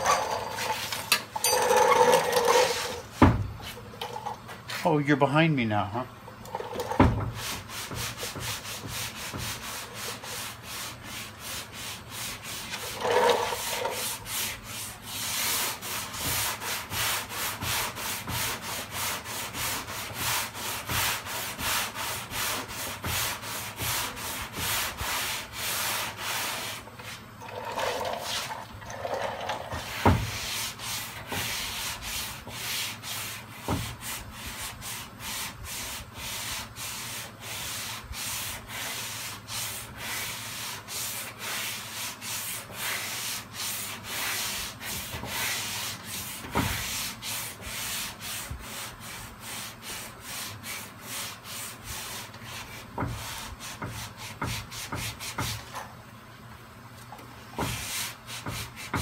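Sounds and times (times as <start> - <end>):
sandpaper rasping on car bodywork: 7.3 - 27.3, 29.7 - 55.7, 57.6 - 59.0.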